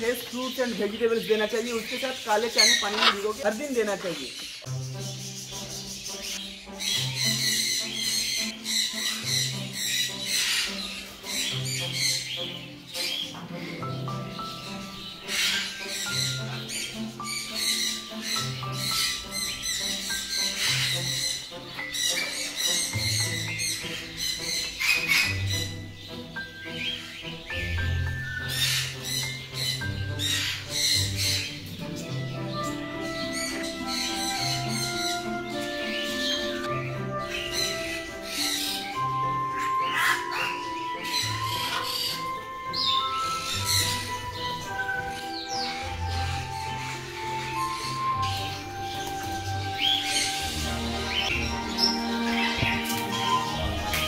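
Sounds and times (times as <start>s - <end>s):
parrots squawking: 0.8s - 54.0s
background music with bass line: 41.4s - 54.0s.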